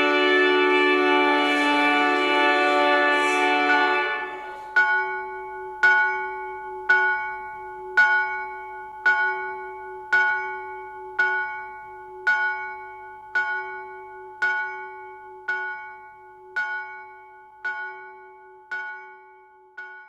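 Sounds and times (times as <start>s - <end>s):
bell tolling: 0.0s - 20.0s.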